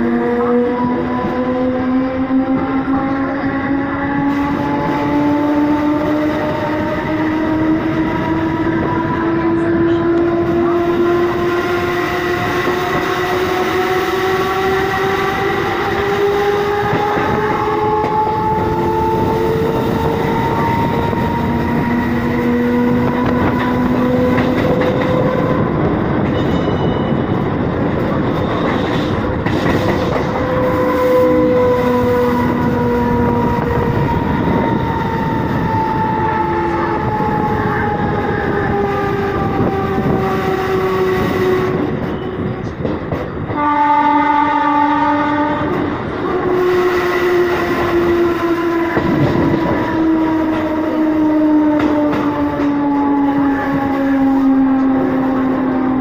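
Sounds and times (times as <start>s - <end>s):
train horn: 0.0s - 27.6s, 28.2s - 42.8s, 43.4s - 56.0s
train wheels rumbling on rails: 0.0s - 56.0s.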